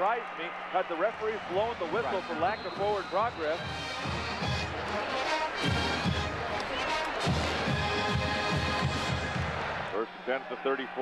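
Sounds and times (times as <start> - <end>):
crowd noise: 0.0 - 11.0
marching band playing: 1.6 - 9.8.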